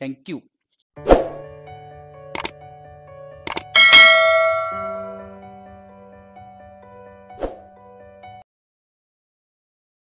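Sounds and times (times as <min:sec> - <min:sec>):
soft background music: 0:01.0 - 0:08.4
double mouse click: 0:03.5 - 0:03.7
bright bell ding: 0:03.6 - 0:05.3.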